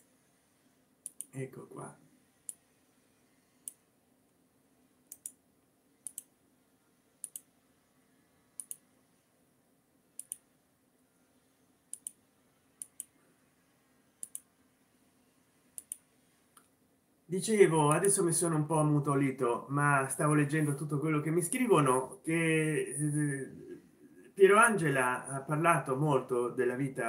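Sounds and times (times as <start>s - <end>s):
faint steady hum: 0.0s - 27.0s
computer mouse clicks: 1.0s - 1.3s, 3.6s - 3.8s, 5.1s - 5.4s, 6.0s - 6.3s, 7.2s - 7.5s, 8.6s - 8.8s, 10.2s - 10.5s, 11.9s - 12.2s, 12.8s - 13.2s, 14.2s - 14.5s, 15.8s - 16.7s.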